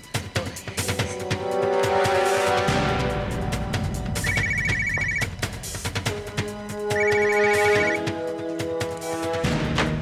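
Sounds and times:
mobile phone ringtone trilling: 0:04.2 - 0:05.4, 0:06.9 - 0:08.0.

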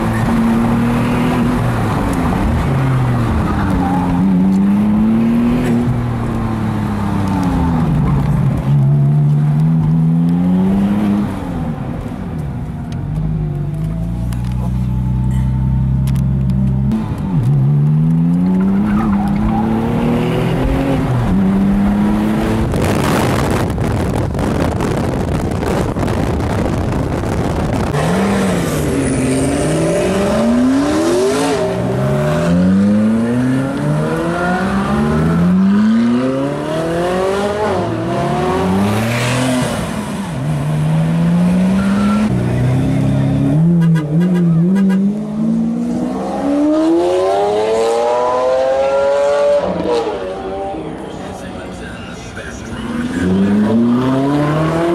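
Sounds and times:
sports car engines revving: 0:00.0 - 0:54.9.

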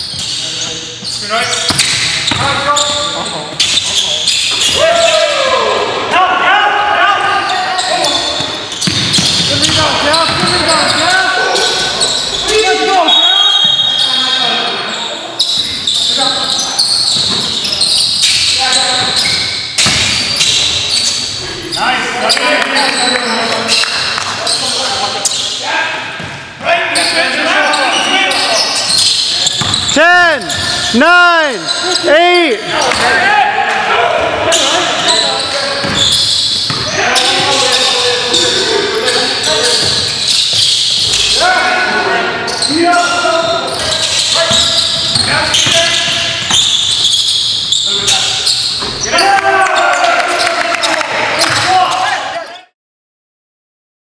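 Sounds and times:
players calling out: 0:00.0 - 0:52.6.

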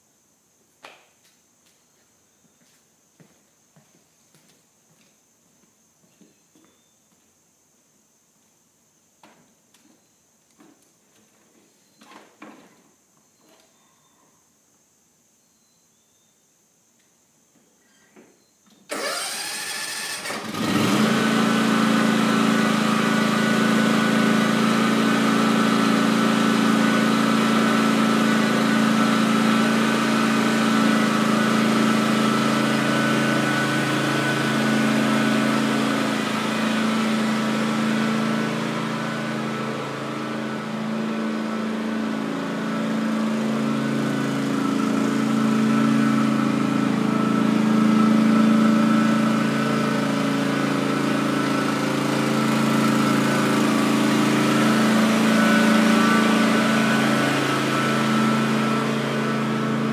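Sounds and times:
lawn tractor engine running: 0:18.9 - 0:59.9.

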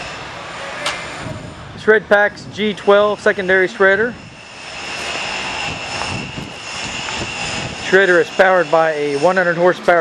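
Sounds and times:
high even whine: 0:00.0 - 0:10.0
steady machine drone: 0:00.0 - 0:10.0.

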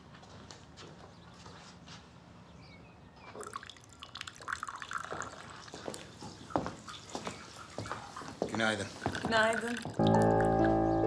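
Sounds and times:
small liquid sounds: 0:03.4 - 0:06.2, 0:06.8 - 0:10.4.

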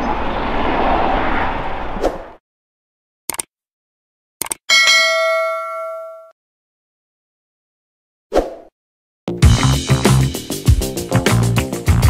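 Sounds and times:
bright bell chime: 0:04.7 - 0:06.3.

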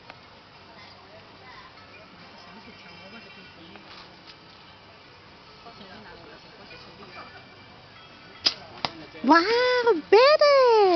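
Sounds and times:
arrow striking target: 0:08.4 - 0:09.0
bow string snap: 0:08.4 - 0:09.0.

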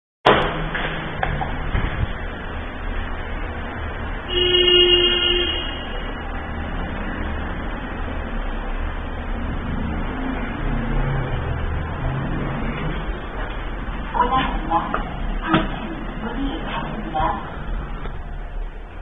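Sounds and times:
elevator machinery rumbling: 0:00.3 - 0:19.0
horn-like tone: 0:04.3 - 0:06.4.

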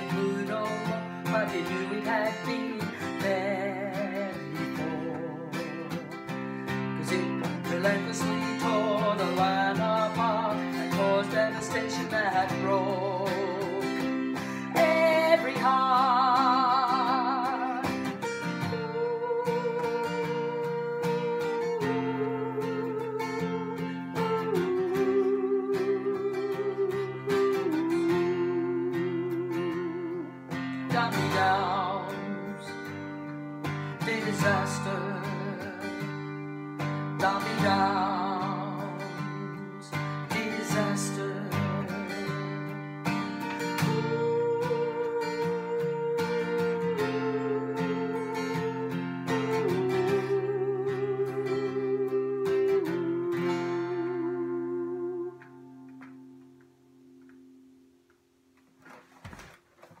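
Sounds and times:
woman singing: 0:00.0 - 0:55.6
strummed acoustic guitar: 0:00.0 - 0:57.8.

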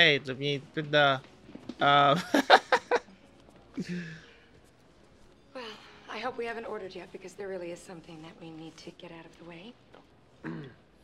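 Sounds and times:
breathy sigh: 0:03.8 - 0:04.4.

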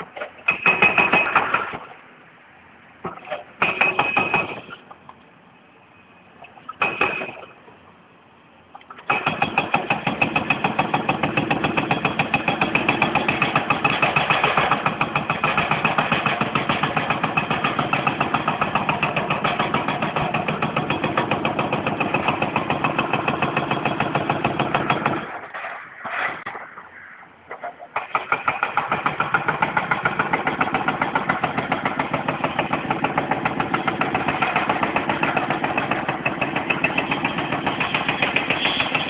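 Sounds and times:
hydraulic breaker hammering: 0:03.6 - 0:04.8, 0:09.0 - 0:25.4, 0:28.0 - 0:39.0.

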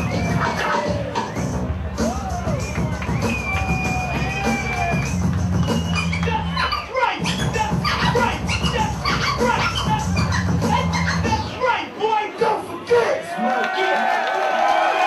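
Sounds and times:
beat with heavy bass line: 0:00.0 - 0:11.6
vinyl record scratching: 0:00.0 - 0:11.7.

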